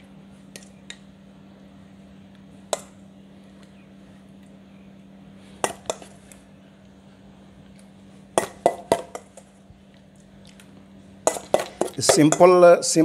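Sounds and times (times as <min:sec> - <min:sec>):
metal spoon clinking on steel bowl: 0:11.3 - 0:12.6.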